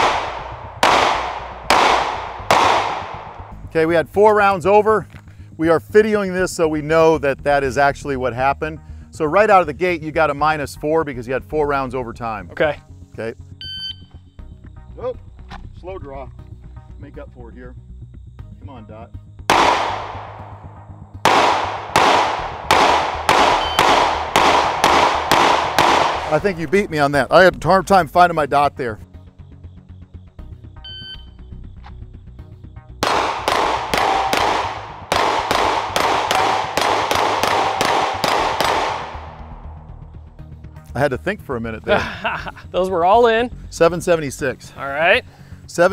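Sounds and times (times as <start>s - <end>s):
pistol shots: 0.0s - 3.7s, 19.5s - 26.8s, 33.0s - 39.8s
background music: 0.0s - 45.9s
shot timer beep: 13.6s - 14.1s, 23.6s - 23.9s, 30.9s - 31.3s.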